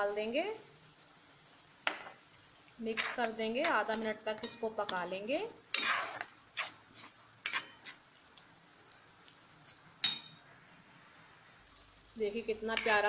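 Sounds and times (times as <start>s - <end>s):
metal spatula scraping pan: 2.8s - 5.0s, 5.7s - 8.0s, 12.7s - 13.0s.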